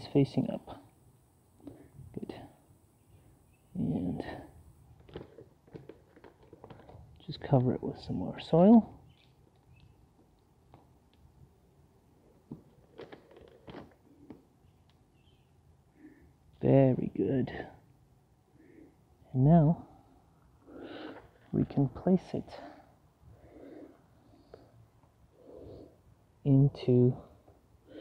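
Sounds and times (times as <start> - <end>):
soil and plastic bag rustling: 12.4 - 14.5
person speaking softly: 21.4 - 22.9.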